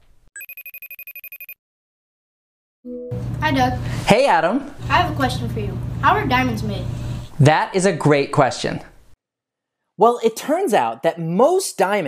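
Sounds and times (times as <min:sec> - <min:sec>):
telephone ringtone trilling: 0:00.4 - 0:01.6.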